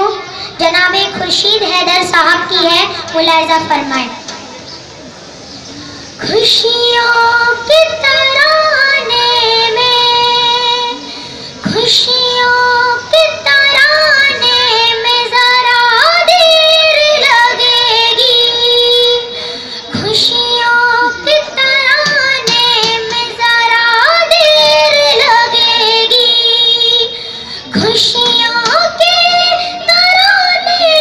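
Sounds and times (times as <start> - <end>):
girl singing through a microphone: 0.0 - 4.4, 5.9 - 31.0.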